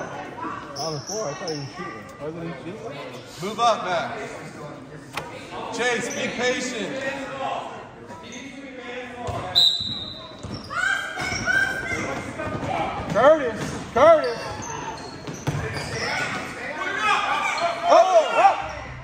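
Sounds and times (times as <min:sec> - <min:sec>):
shoes squeaking: 0:09.3 - 0:17.9.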